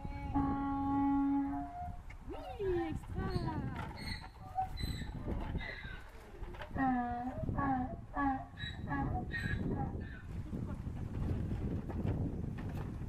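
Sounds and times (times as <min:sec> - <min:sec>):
donkey braying: 0:03.3 - 0:10.2.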